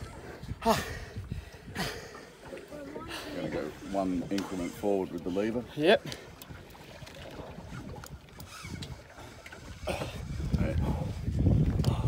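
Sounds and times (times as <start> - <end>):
wind rumble on microphone: 0.0 - 2.1, 6.5 - 12.0.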